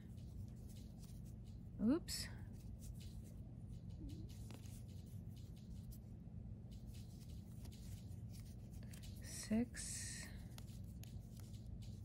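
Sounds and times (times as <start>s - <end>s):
crochet hook scratching yarn: 0.0s - 12.0s.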